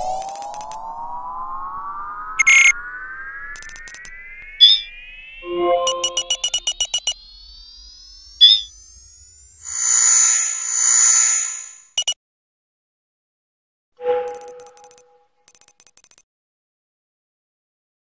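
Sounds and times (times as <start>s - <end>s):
electronic blips: 0.0s - 1.0s, 1.9s - 12.2s, 14.0s - 16.2s
rising electronic tone: 0.0s - 12.1s, 14.0s - 16.0s
rapid high clicking beeps: 0.2s - 0.8s, 2.4s - 2.7s, 3.6s - 9.0s, 12.0s - 12.2s, 14.2s - 16.2s
noisy electronic buzz: 1.7s - 12.2s.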